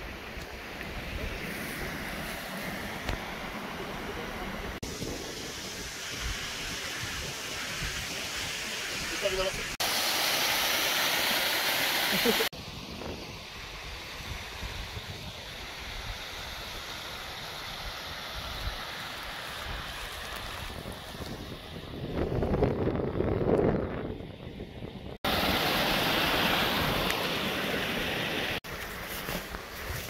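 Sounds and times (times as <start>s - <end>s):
stream running: 0.0s - 21.8s, 25.2s - 30.0s
wind on microphone: 4.6s - 9.7s, 19.6s - 25.4s.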